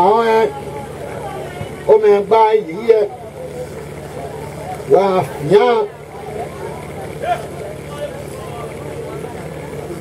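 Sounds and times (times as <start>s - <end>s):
faint background voices: 0.0s - 10.0s.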